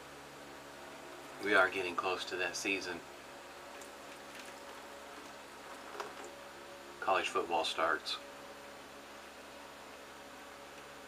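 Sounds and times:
room hiss and hum: 0.0 - 11.0.

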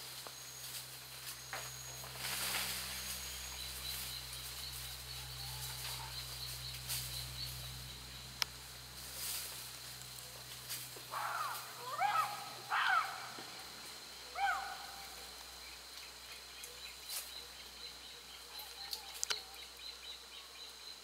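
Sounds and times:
high insect whine: 0.0 - 21.0
chimpanzee hooting: 11.1 - 13.4, 14.3 - 15.3
faint clicks: 18.6 - 19.5.

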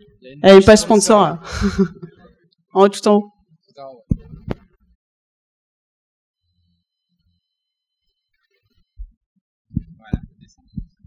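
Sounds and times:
microphone handling thumps: 4.1 - 4.6, 9.7 - 11.0.

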